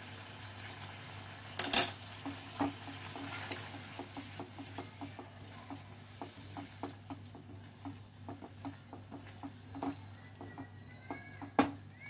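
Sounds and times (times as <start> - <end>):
light sizzling: 0.0 - 12.0
spatula stirring thick gravy: 2.1 - 11.5.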